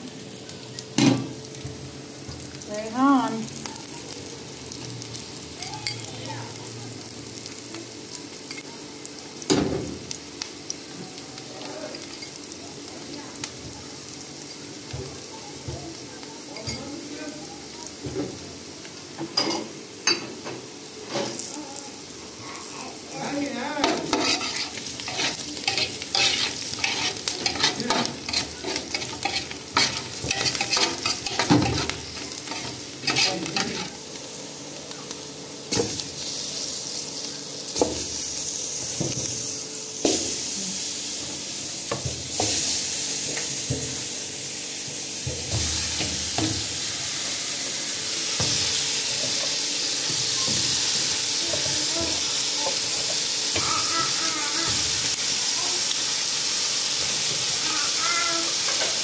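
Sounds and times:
food sizzling in hot oil: 0.0 - 59.0
metal spoon clinking against pot: 23.8 - 33.9.

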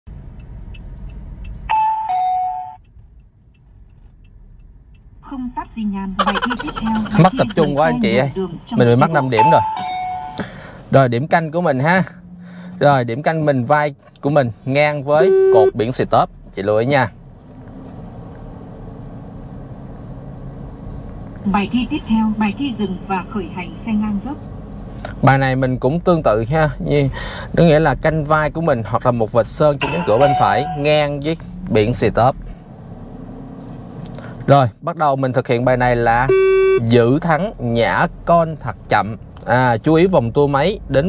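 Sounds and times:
car engine and road rumble: 0.0 - 41.0
electronic ding-dong chime: 29.8 - 30.9.

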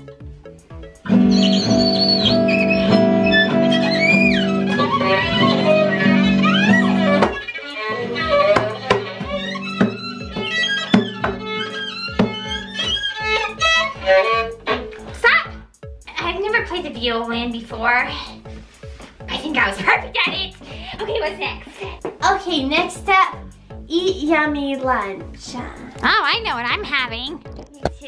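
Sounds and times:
violin with sliding notes: 1.0 - 15.2.

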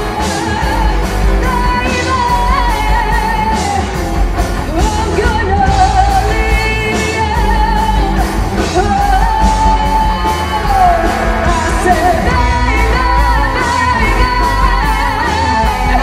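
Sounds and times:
drums with cymbals: 0.0 - 16.0
electric bass: 0.0 - 16.0
electric guitar: 0.0 - 16.0.

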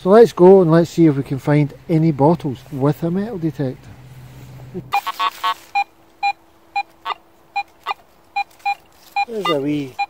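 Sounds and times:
metal detector beeps: 4.9 - 10.0.

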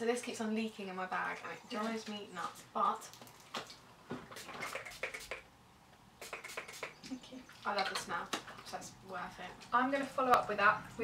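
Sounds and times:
spray bottle hissing bursts: 4.3 - 5.4, 6.2 - 7.0.

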